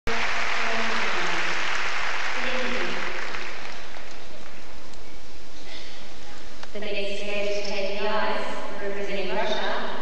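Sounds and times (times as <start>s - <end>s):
crowd applauding: 0.1s - 4.9s.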